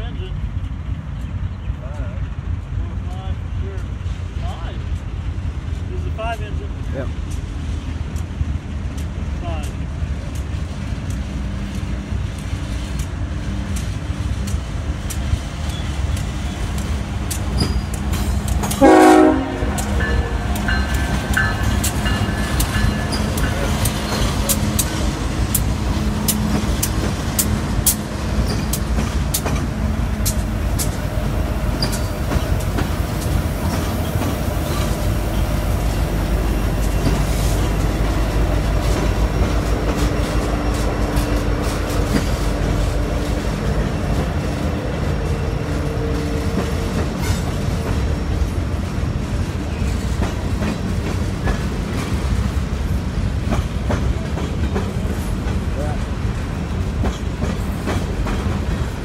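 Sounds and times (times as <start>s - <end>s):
diesel locomotive engine rumble: 0.0s - 59.0s
wheels clicking over rail joints: 0.2s - 59.0s
train horn toot: 18.7s - 20.9s.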